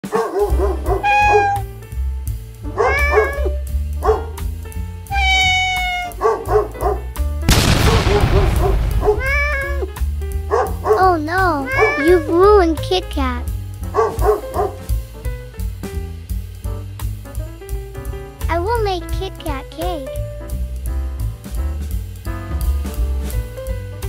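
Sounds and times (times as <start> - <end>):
cartoon dog yelps: 0.4 - 1.7, 2.8 - 3.6, 5.1 - 6.7, 8.6 - 9.9, 10.8 - 12.8
cartoon cat meows: 0.9 - 1.7, 2.8 - 3.6, 5.1 - 6.2, 8.6 - 9.9, 11.0 - 13.4
crash-like burst of noise: 7.5 - 10.0.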